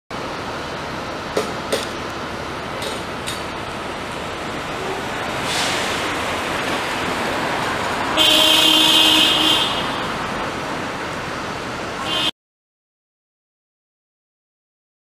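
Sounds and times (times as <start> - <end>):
city street traffic: 0.1 - 12.4
vehicle horn: 8.1 - 10.2, 12.0 - 12.3.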